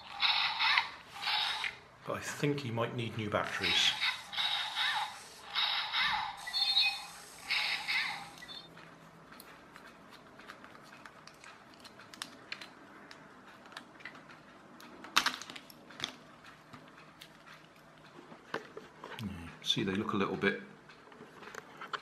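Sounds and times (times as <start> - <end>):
toy motor whirring: 0.0 - 1.9, 3.4 - 8.7.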